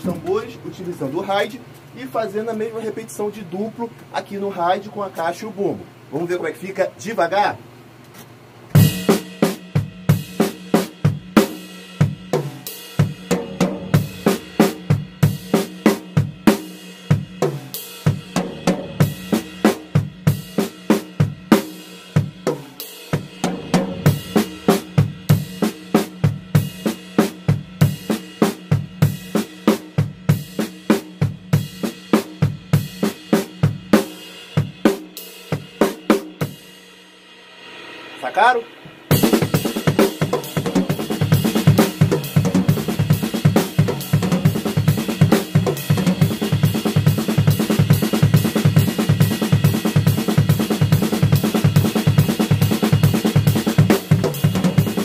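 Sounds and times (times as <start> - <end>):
drum kit playing slowly: 0.0 - 5.5, 7.4 - 55.0.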